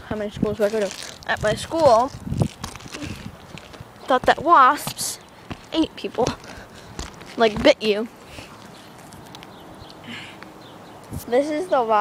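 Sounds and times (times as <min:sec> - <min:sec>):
footsteps scuffing on shingle roof: 0:00.5 - 0:10.0.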